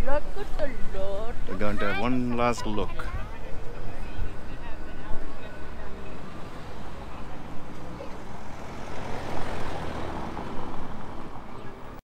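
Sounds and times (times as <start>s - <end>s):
car driving on cobblestones: 5.4s - 12.0s.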